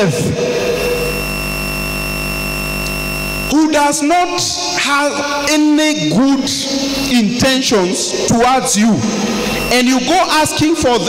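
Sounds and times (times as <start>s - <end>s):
electronic buzz: 0.0s - 11.0s.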